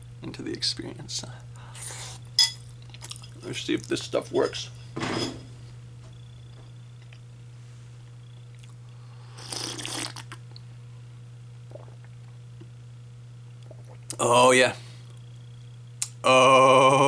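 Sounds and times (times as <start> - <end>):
steady low hum: 0.0 - 17.0
man slurping tea: 9.3 - 10.4.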